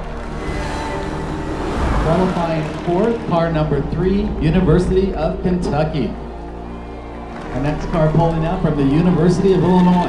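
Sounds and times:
rush of noise: 0:00.0 - 0:05.5
background music: 0:00.0 - 0:10.0.

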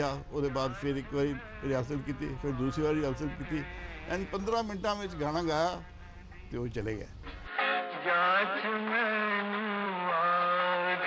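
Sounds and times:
man singing: 0:00.0 - 0:06.5, 0:07.5 - 0:11.0.

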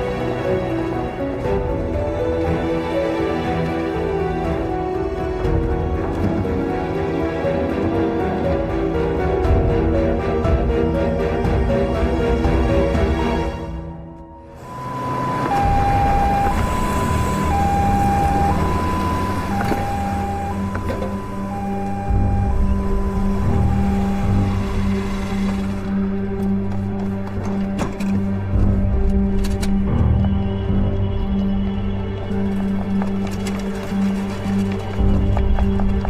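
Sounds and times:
ambulance siren two-tone: 0:14.5 - 0:25.7
low pulsing sustained note: 0:14.6 - 0:26.0.

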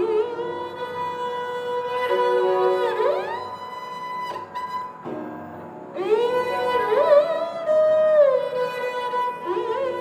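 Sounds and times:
bowed sarangi melody: 0:00.0 - 0:10.0.

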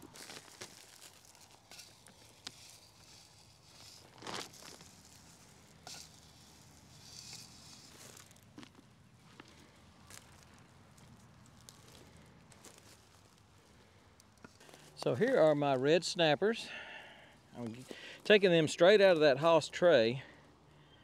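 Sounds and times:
plastic bag crinkling: 0:00.0 - 0:13.5
small rustles and clicks: 0:00.0 - 0:15.2
granular fertilizer poured into soil: 0:00.0 - 0:15.8.

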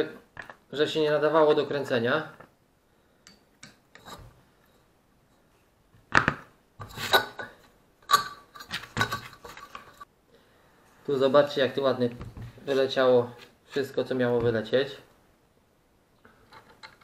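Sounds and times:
metal scraping and clattering: 0:08.1 - 0:10.1.

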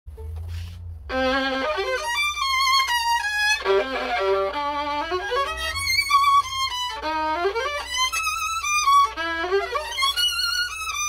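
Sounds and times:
low rumble: 0:00.1 - 0:09.5
bowed violin melody: 0:00.1 - 0:11.0.

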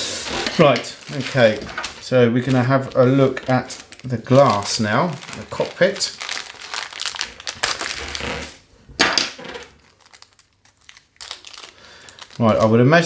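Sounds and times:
plastic bag crinkling: 0:00.1 - 0:08.6, 0:09.4 - 0:13.0.

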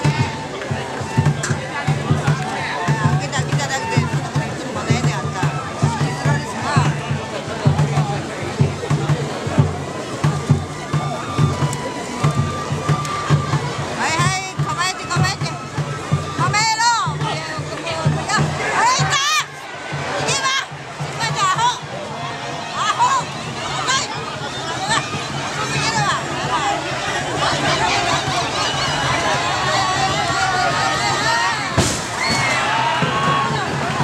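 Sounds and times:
crowd calls and shouts: 0:00.0 - 0:34.0
festival music with low beat: 0:00.0 - 0:34.0
large street crowd voices: 0:00.0 - 0:34.0.

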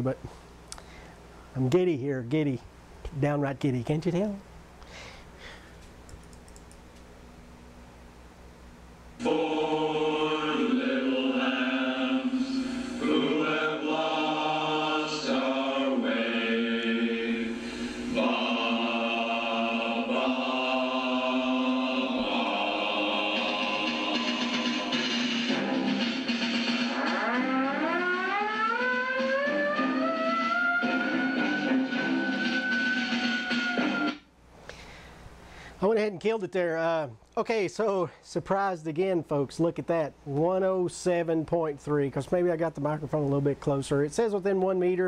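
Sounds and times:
loud melody over low drone: 0:18.2 - 0:34.2
tone gliding up in pitch: 0:26.9 - 0:34.2.

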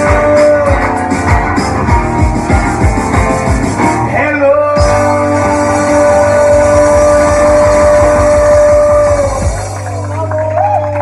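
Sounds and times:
singer holding long note: 0:04.3 - 0:09.7.

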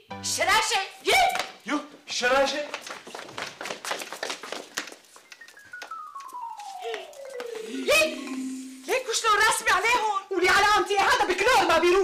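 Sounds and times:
hurried footsteps on hard floor: 0:01.4 - 0:08.1.

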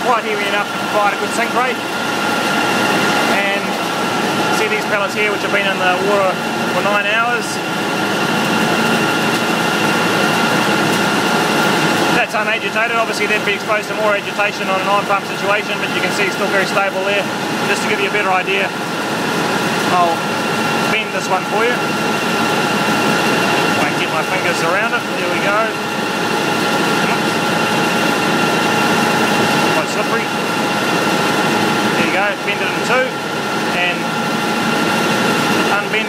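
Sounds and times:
constant high whine: 0:00.0 - 0:36.0
machinery running: 0:00.0 - 0:36.0.

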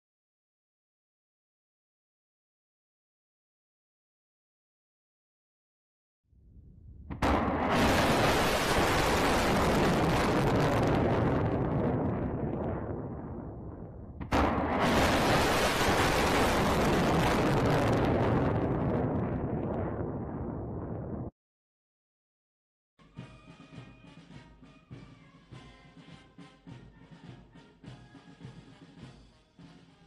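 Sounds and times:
loud rushing rocket noise: 0:06.8 - 0:21.3
rocket motor ignition blast: 0:07.1 - 0:12.8, 0:13.8 - 0:18.8.

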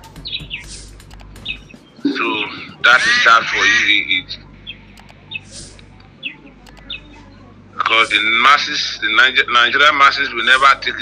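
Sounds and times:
bird chirps: 0:00.1 - 0:02.8
man talking: 0:02.1 - 0:04.4.

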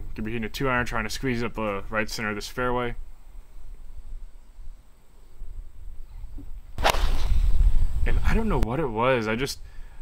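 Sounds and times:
golf club striking ball: 0:06.8 - 0:07.4.

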